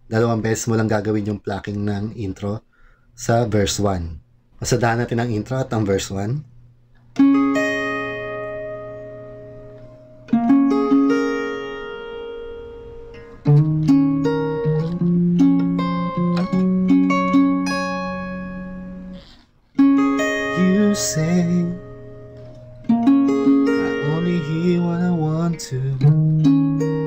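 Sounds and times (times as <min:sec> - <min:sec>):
fingerpicked acoustic guitar: 0:07.2 - 0:27.0.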